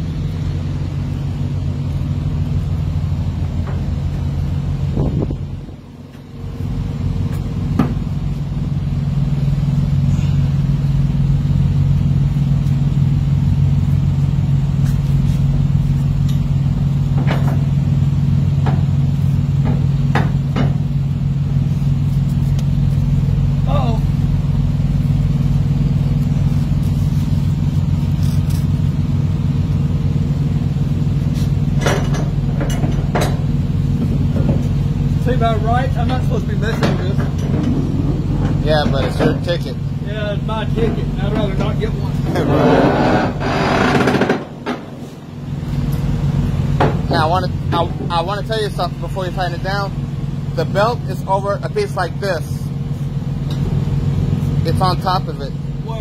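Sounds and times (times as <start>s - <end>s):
diesel engine idling: 0.0s - 56.0s.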